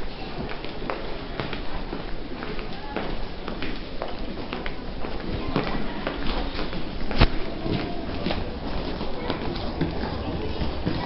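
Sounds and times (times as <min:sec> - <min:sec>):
crowd hubbub: 0:00.0 - 0:11.0
footsteps on tiled floor: 0:00.0 - 0:11.0.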